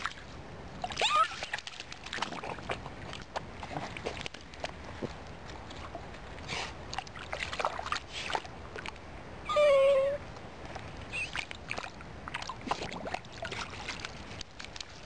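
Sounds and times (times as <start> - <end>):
dog splashing in water: 0.0 - 9.0, 11.1 - 15.0
dog whining: 9.4 - 10.2, 11.1 - 11.4.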